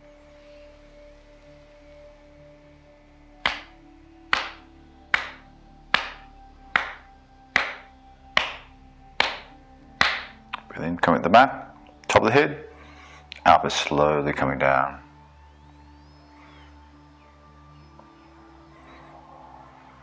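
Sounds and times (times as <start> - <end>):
faint music drone: 0.0 - 20.0
hands slapping head: 3.4 - 10.7.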